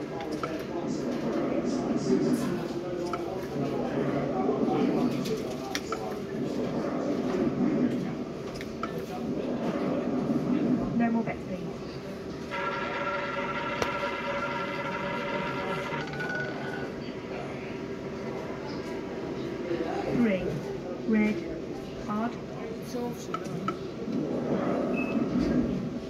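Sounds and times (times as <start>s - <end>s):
indistinct voices: 11.7s - 25.9s
electronic tone chord: 12.5s - 16.9s
soft electronic tone: 12.5s - 17.0s.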